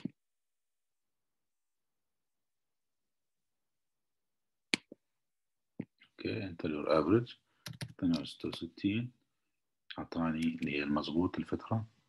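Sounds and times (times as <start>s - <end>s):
computer mouse clicks: 7.6s - 8.6s.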